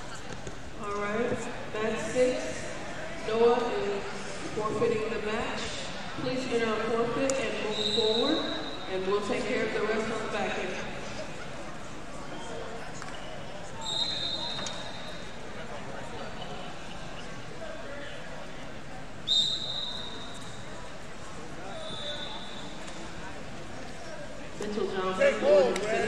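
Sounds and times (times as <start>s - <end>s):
murmur of voices: 0.0s - 26.0s
referee whistle blasts: 7.7s - 8.9s, 13.8s - 15.2s, 19.2s - 20.4s, 21.8s - 22.8s.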